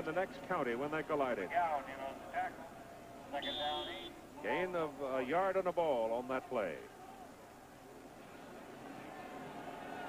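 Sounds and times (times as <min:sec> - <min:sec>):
men talking on television: 0:00.0 - 0:06.9.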